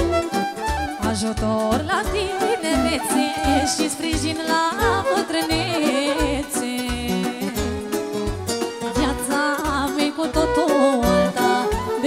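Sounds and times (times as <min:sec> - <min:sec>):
amplified band with bass beat: 0:00.0 - 0:02.3, 0:02.9 - 0:12.0
woman singing into a microphone: 0:00.0 - 0:08.2, 0:08.8 - 0:12.0.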